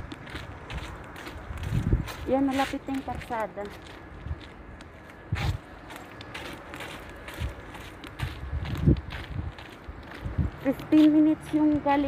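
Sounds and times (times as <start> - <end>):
footsteps: 0.0 - 12.0
woman speaking: 2.2 - 3.8, 10.6 - 12.0.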